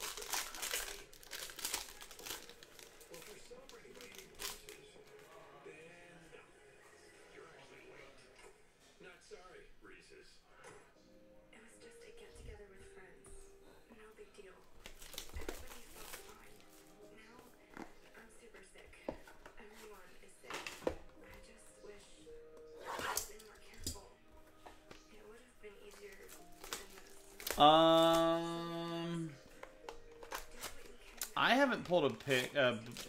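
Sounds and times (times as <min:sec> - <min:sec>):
wrapper crinkling: 0:00.0 - 0:05.3, 0:14.8 - 0:16.9, 0:25.8 - 0:28.5, 0:29.3 - 0:33.0.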